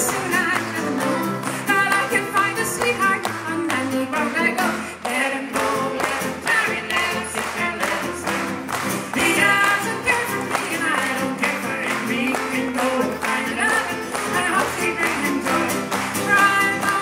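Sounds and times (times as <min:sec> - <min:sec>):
hand claps: 0:00.0 - 0:17.0
strummed acoustic guitar: 0:00.0 - 0:17.0.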